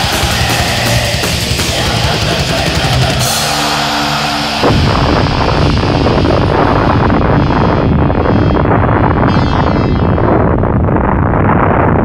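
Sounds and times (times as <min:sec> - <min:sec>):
held distorted guitar chord: 0:00.0 - 0:10.6
metal band playing: 0:00.0 - 0:10.6.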